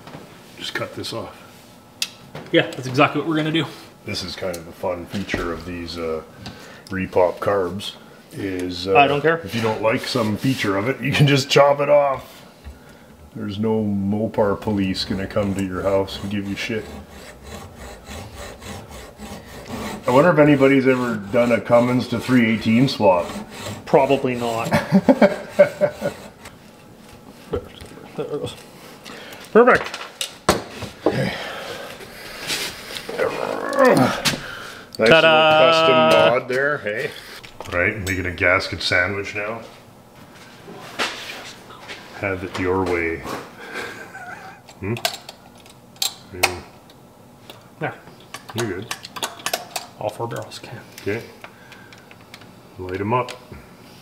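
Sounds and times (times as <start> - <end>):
hacksaw cutting metal: 14.9 - 26.6
man speaking drawn-out word: 35.1 - 36.5
metal parts clicking and tapping: 48.2 - 50.5.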